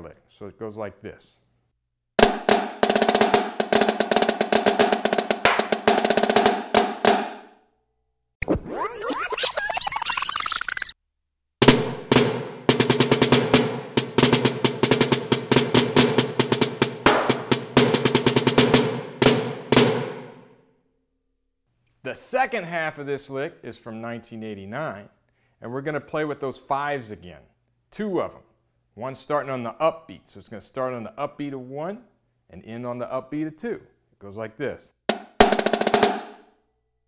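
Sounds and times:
marching snare drum rolls: 2.2s - 7.5s, 11.6s - 20.4s, 35.1s - 36.4s.

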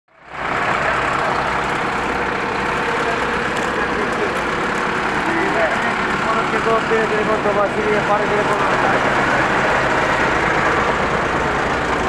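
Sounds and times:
fire engine running: 0.1s - 12.0s
faint voices: 0.4s - 11.2s.

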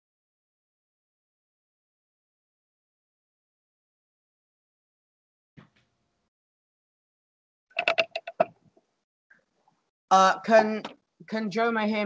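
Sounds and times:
microphone handling clicks: 7.8s - 8.7s.

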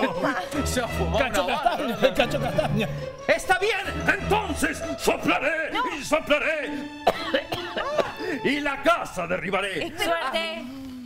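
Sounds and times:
man coughing: 7.0s - 8.4s.

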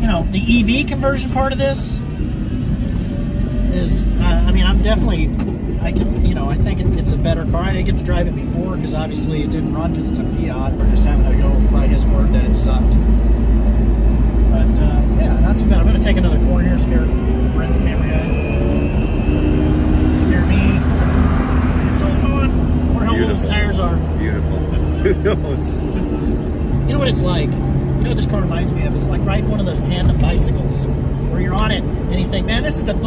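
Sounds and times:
road and wind rumble: 0.0s - 33.0s
steady low hum: 0.0s - 33.0s
man talking: 3.7s - 13.2s, 14.4s - 18.6s, 21.9s - 33.0s.

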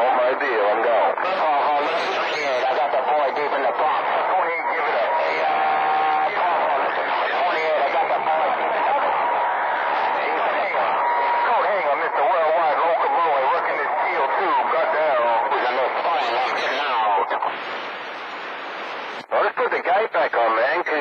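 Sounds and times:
distorted radio voices: 0.0s - 21.0s
radio whistle: 9.2s - 12.2s.

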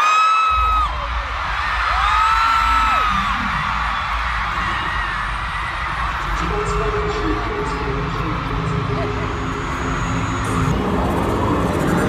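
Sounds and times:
crowd screaming: 0.0s - 12.0s
deep bass music: 0.6s - 12.0s.

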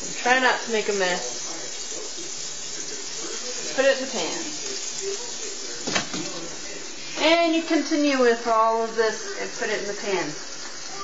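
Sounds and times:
chicken sizzling in a frying pan: 0.0s - 11.0s.

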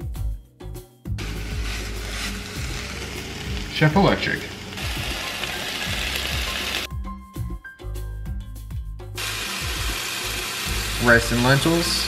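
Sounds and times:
background music: 0.0s - 12.0s
vegetables sizzling in a frying pan: 1.2s - 6.9s, 9.2s - 12.0s.

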